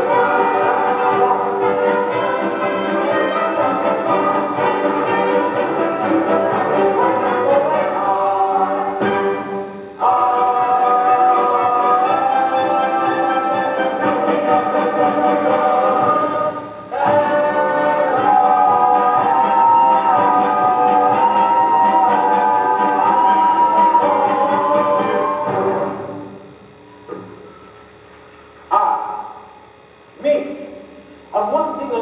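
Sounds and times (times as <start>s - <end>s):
performers singing show tune: 0.0s - 26.3s.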